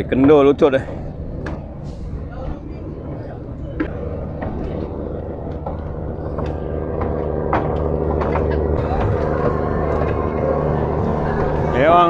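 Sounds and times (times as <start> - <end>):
boat engine droning: 0.0 - 12.0.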